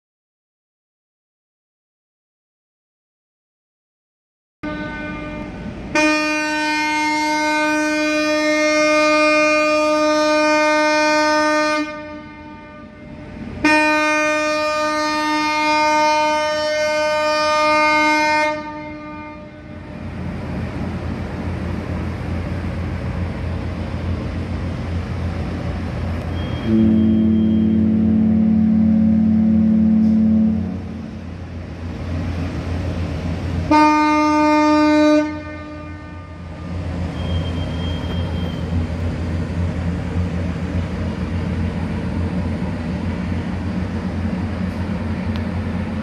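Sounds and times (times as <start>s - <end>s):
ship's horn blasts: 4.6s - 20.1s, 26.1s - 40.9s.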